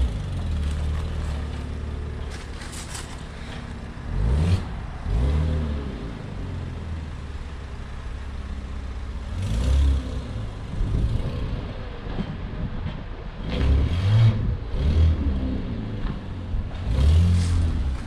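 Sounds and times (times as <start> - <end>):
sports car engine rumbling: 0.0 - 18.0.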